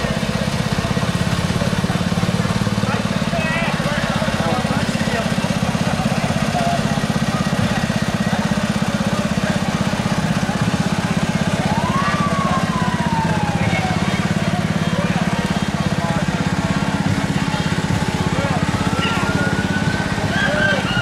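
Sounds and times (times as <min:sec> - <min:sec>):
engine running: 0:00.0 - 0:21.0.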